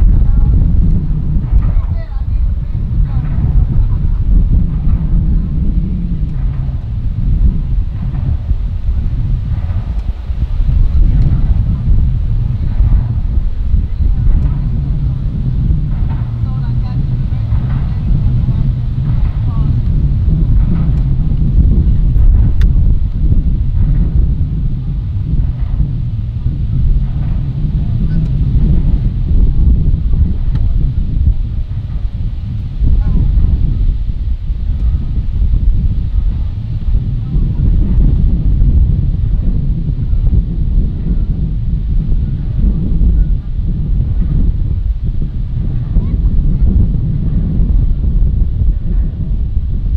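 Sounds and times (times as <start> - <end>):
faint distant voices: 0.0 - 49.5
wind rumbling on microphone: 0.0 - 49.9.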